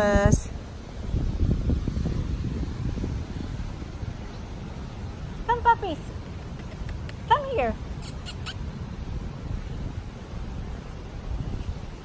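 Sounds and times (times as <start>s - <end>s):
wind rumble on microphone: 0.0s - 12.0s
short high squeaks: 8.0s - 8.7s.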